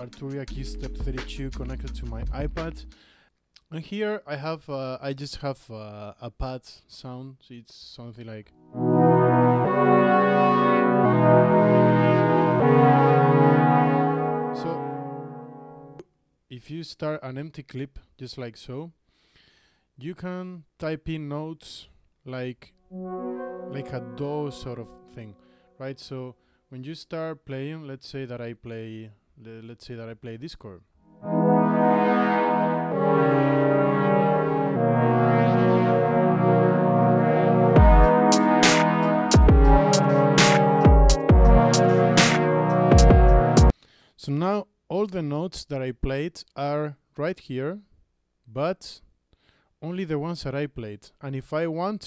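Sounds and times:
synth pad sustained chords: 0:08.6 - 0:15.9, 0:22.9 - 0:25.2, 0:31.1 - 0:43.7.

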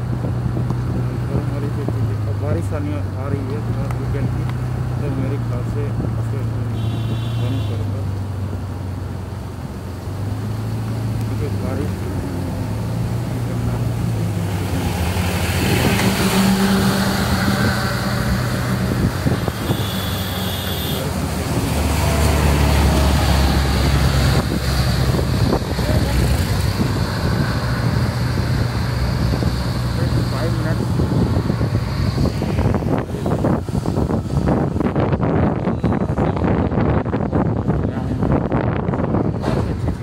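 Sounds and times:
road noise on wet road: 0:00.0 - 0:40.0
vehicle engine drone: 0:00.0 - 0:40.0
wind noise: 0:13.8 - 0:20.2, 0:21.1 - 0:40.0.

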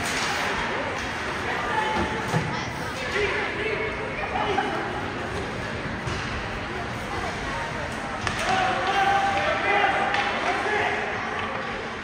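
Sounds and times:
hockey sticks and puck knocking: 0:08.2 - 0:10.5.

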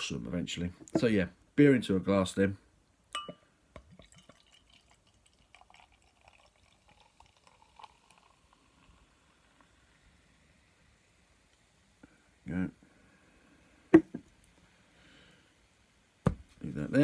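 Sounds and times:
glass clink: 0:03.1 - 0:03.5
beer pouring and fizzing: 0:03.7 - 0:12.0.

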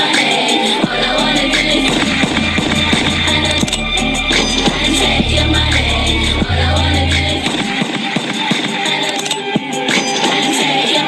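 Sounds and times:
song through small speakers: 0:00.0 - 0:08.0.

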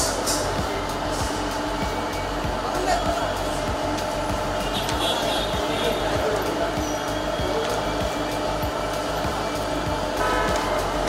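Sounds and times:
faint music: 0:00.0 - 0:11.0
steady rushing noise: 0:00.0 - 0:11.0.

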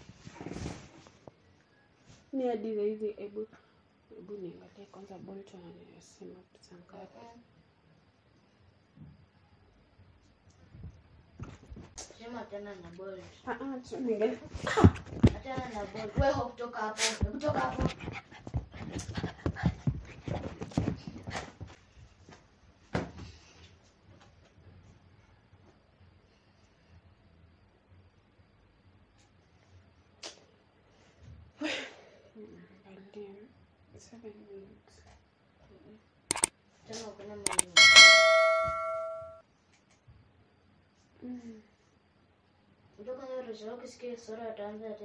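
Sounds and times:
small dog panting: 0:17.6 - 0:21.2
metallic bell ding: 0:37.5 - 0:39.4.

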